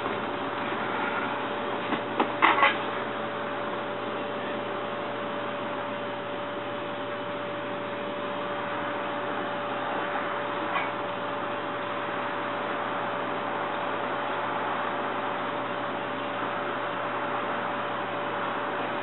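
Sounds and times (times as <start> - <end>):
hum-like tone: 0.0 - 19.0
steady background hiss: 0.0 - 19.0.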